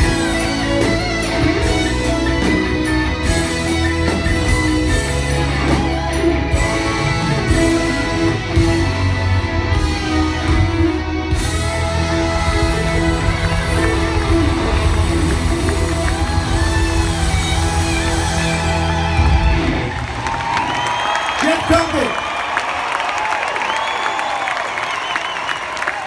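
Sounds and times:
live rock band with orchestra: 0:00.0 - 0:22.3
crowd cheering and shouting: 0:00.0 - 0:26.0.

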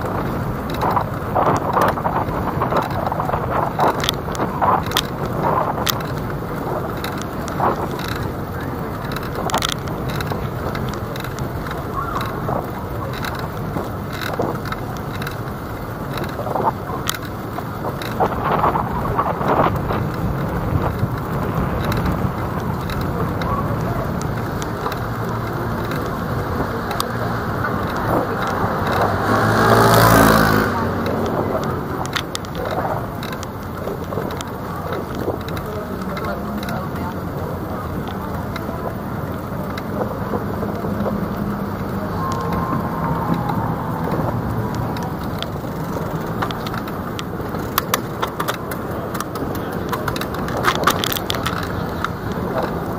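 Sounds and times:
vehicle passing close: 0:00.0 - 0:33.4, 0:35.6 - 0:47.8
city street traffic noise: 0:00.0 - 0:52.9.

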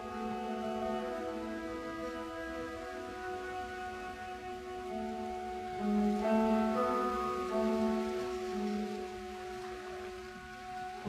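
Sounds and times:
orchestral sustained chord: 0:00.0 - 0:11.0.

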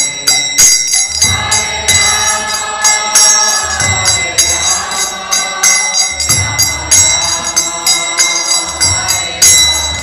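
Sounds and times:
hand cymbals ringing: 0:00.0 - 0:10.0
low drum beats: 0:01.2 - 0:02.6, 0:03.6 - 0:07.8
group of voices chanting: 0:01.2 - 0:10.0.

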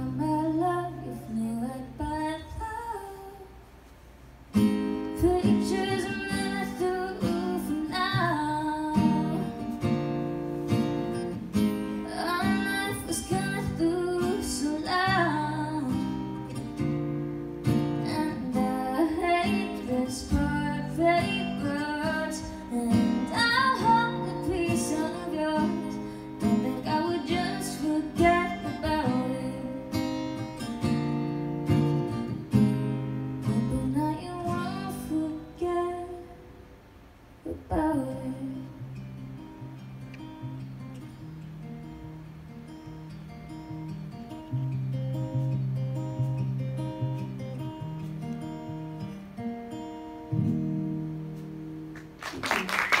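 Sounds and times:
acoustic guitar strumming chords: 0:04.5 - 0:36.8, 0:37.6 - 0:52.2
applause: 0:51.9 - 0:53.0.

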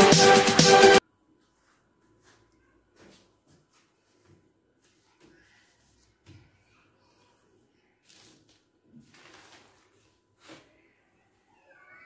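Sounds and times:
faint high-pitched cry: 0:10.7 - 0:12.0.

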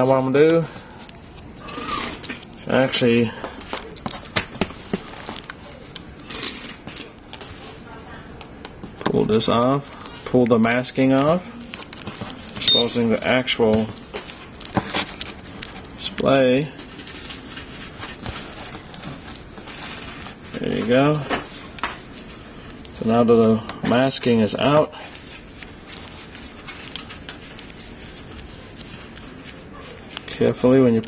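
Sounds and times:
plastic film crinkling rustle: 0:00.0 - 0:31.0
fingernails picking at plastic film: 0:08.4 - 0:23.2, 0:23.9 - 0:30.5.

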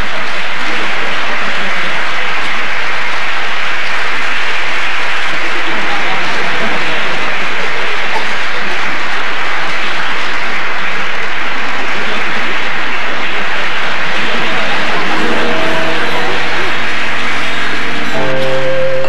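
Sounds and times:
audience applause: 0:00.0 - 0:19.0.

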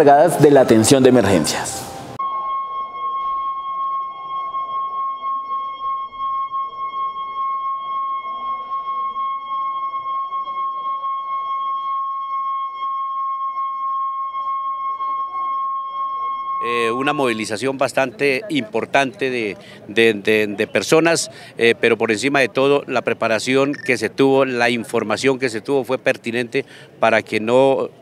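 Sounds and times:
faint crowd noise: 0:00.0 - 0:28.0
high-pitched electronic alarm tone: 0:02.2 - 0:18.1, 0:23.6 - 0:24.0.

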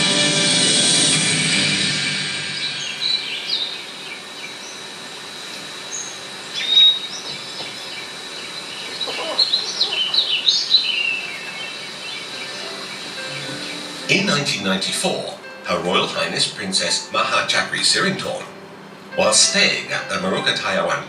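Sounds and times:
bird whistled note: 0:01.9 - 0:04.8, 0:05.9 - 0:07.6, 0:08.7 - 0:14.5
birds chirping: 0:02.6 - 0:15.2.

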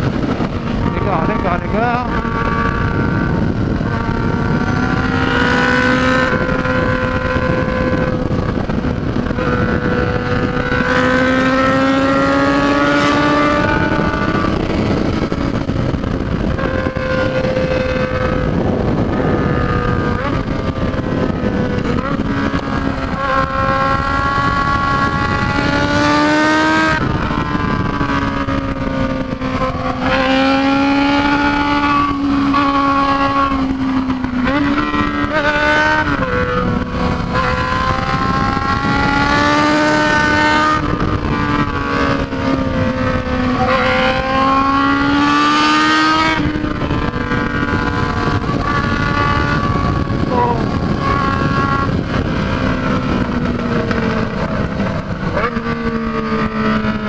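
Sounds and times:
motorcycle engine running hard: 0:00.0 - 0:57.0
wind noise: 0:00.0 - 0:57.0.

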